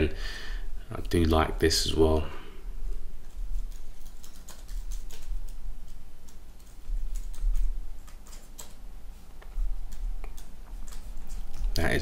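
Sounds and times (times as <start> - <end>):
keyboard and mouse clicking: 3.6 - 8.8, 9.4 - 11.8.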